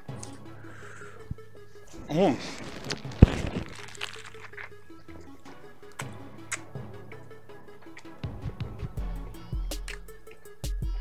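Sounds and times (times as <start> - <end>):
quiet background music: 0.0 - 11.0
crunch of biting lettuce: 2.0 - 6.7.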